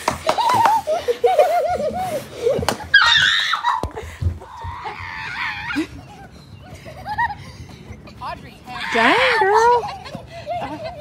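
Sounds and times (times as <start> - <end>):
children shrieking and laughing: 0.0 - 11.0.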